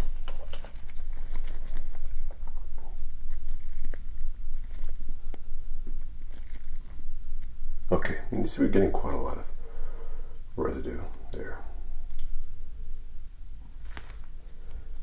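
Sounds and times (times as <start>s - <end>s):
gloves crinkling: 0.0s - 9.3s, 13.6s - 15.0s
steady low rumble: 0.0s - 15.0s.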